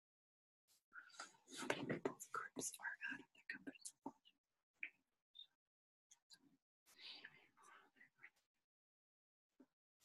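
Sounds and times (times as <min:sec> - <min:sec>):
woman whispering: 0:01.1 - 0:04.3, 0:06.9 - 0:08.4.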